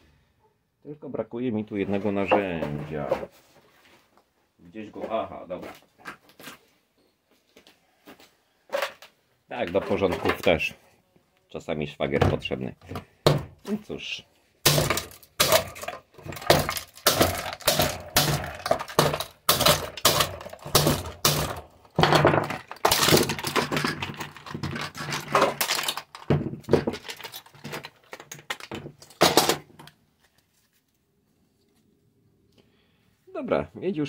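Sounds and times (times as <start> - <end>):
tools knocking plastic: 14.7 - 29.9
plastic casing cracking: 14.7 - 30.0.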